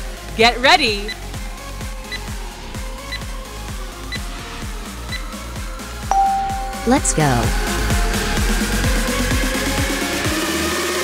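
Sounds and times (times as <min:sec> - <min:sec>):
electronic music with steady beat: 0:06.1 - 0:07.6
countdown timer high beeps: 0:06.1 - 0:07.7.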